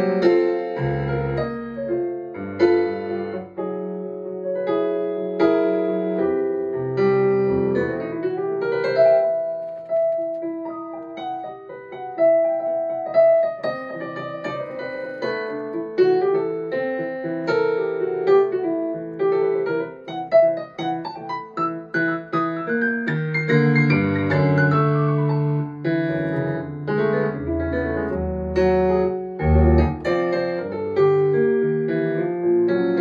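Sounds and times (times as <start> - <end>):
jazz piano: 0.0 - 33.0.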